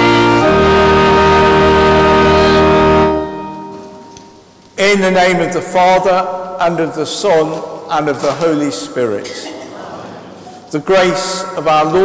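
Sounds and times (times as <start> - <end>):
church organ chord: 0.0 - 7.2.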